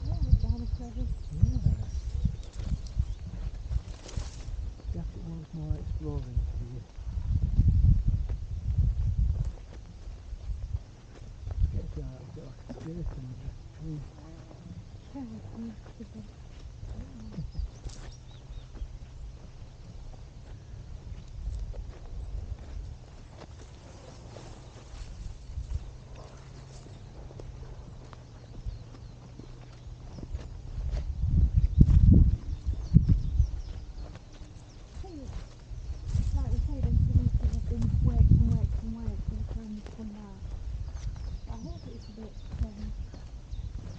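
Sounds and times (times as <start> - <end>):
footsteps crunching on dirt path: 0.0 - 43.9
wind buffeting microphone: 0.0 - 43.9.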